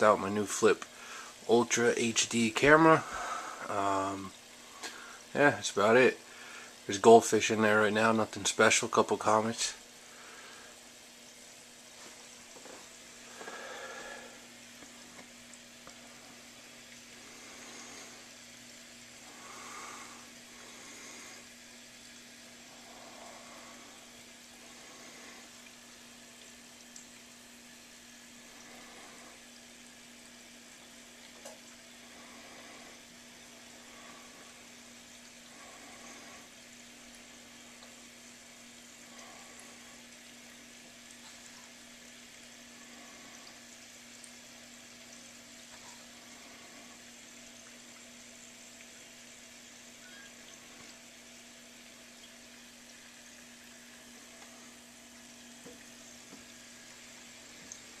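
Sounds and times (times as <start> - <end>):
steady low hum: 0.0 - 58.0
water bubbling and trickling: 10.8 - 58.0.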